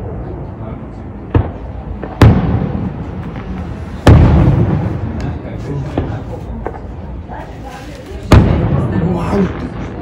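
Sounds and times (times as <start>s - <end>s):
firework shells booming: 1.2s - 7.0s, 8.2s - 10.0s.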